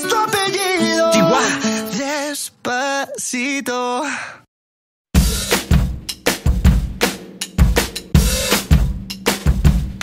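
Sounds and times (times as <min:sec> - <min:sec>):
drum kit beat: 0:05.2 - 0:10.0.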